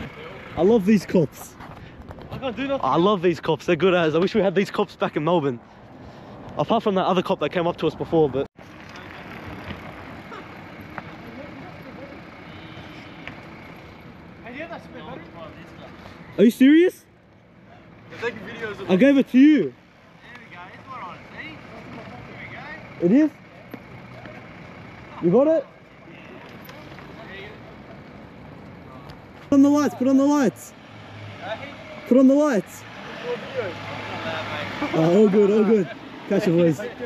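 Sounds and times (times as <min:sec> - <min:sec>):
street background noise: 0:00.0 - 0:37.0
traffic hum: 0:00.0 - 0:37.0.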